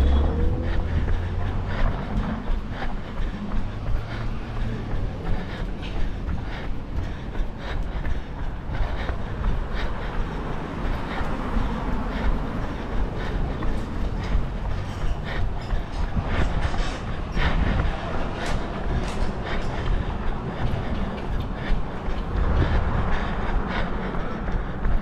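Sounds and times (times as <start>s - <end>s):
low rumble: 0.0s - 9.7s
running footsteps on pavement: 0.0s - 25.0s.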